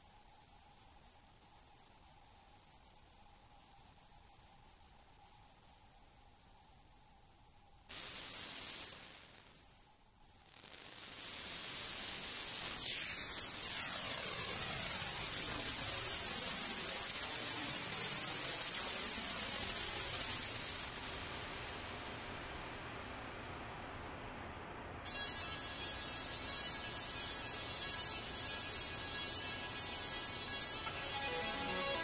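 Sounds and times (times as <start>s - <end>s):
synthesizer white-noise hiss: 7.9s - 9.5s, 10.4s - 32.0s
thin high synthesizer tone: 26.4s - 32.0s.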